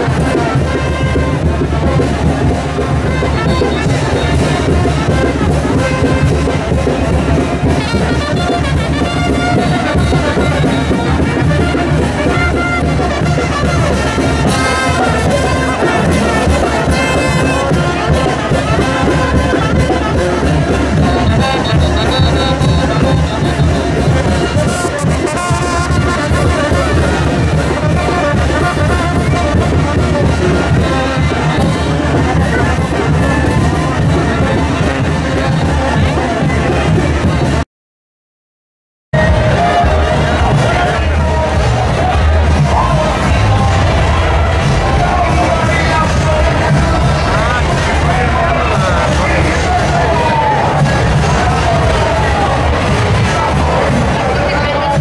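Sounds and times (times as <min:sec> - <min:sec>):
brass band playing: 0:00.0 - 0:37.6, 0:39.2 - 0:55.0.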